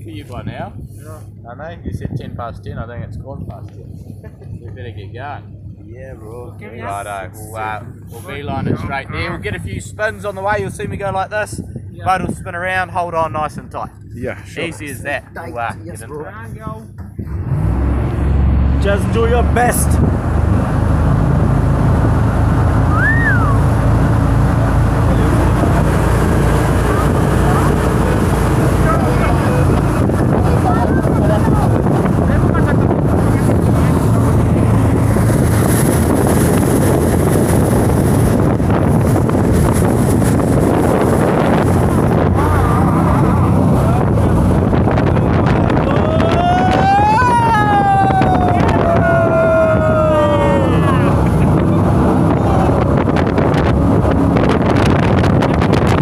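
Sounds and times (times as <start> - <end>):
jet boat engine: 0.0 - 56.0
wind buffeting microphone: 0.0 - 56.0
riders crying out: 45.9 - 51.3.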